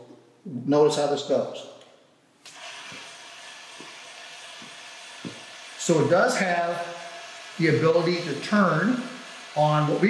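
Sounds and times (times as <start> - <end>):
motor whirring whine: 2.5 - 10.0.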